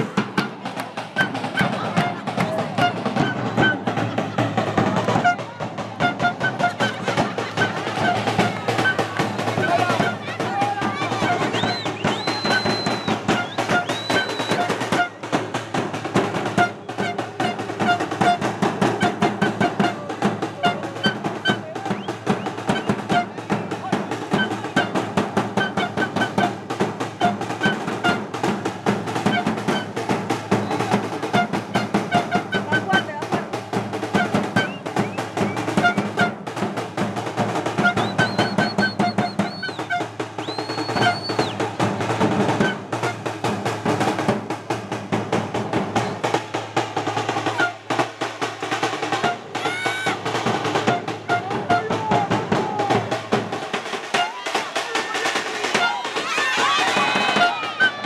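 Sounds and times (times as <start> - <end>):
crowd chanting: 0.0 - 16.5, 49.2 - 58.0
drums beating fast: 0.0 - 58.0.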